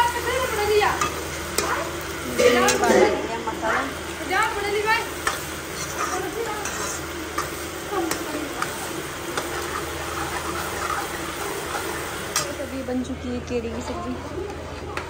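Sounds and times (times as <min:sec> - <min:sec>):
vegetables sizzling in oil: 0:00.0 - 0:14.5
metal ladle scraping a pan: 0:01.0 - 0:04.1, 0:05.2 - 0:12.6.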